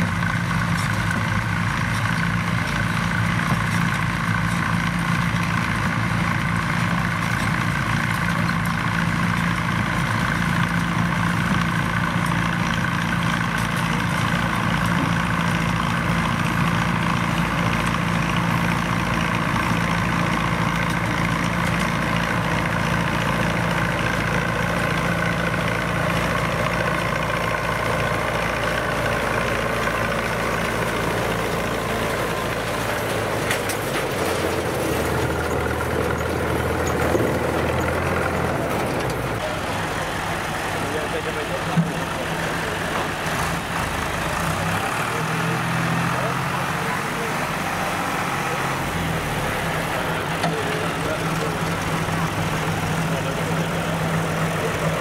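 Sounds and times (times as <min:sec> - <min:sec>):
harvester machinery running: 0:00.0 - 0:55.0
tractor engine running under load: 0:00.0 - 0:55.0.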